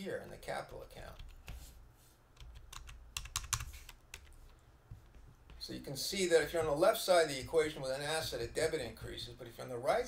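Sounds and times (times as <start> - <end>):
computer keyboard typing: 2.4 - 4.5.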